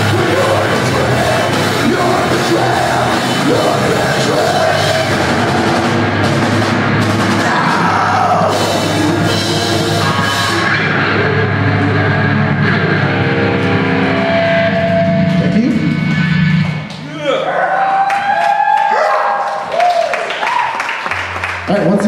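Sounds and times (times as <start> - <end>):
distorted electric guitar chords: 0.0 - 17.2.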